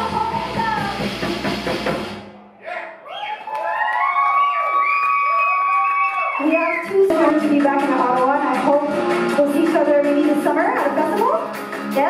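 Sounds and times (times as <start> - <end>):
audience cheering and whooping: 2.6 - 7.0.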